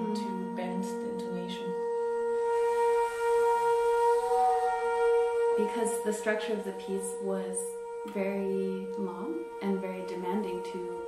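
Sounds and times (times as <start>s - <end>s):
bass flutes sustaining tones: 0.0s - 11.0s.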